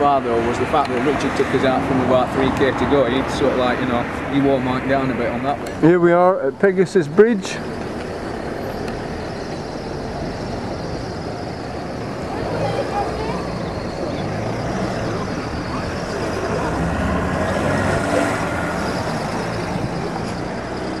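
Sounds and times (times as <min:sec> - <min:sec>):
people talking indistinctly: 0:00.0 - 0:20.6
cars driving past: 0:00.0 - 0:21.0.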